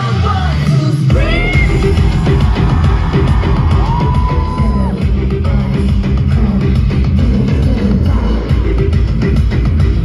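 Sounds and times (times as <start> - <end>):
live rock pop music: 0.0 - 10.0.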